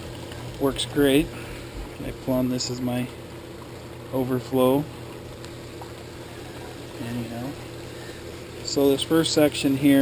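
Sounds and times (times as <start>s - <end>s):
low pump hum: 0.0s - 10.0s.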